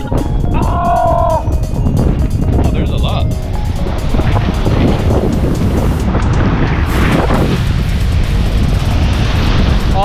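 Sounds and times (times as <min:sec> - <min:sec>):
music: 0:00.0 - 0:10.0
wind buffeting microphone: 0:00.0 - 0:10.0.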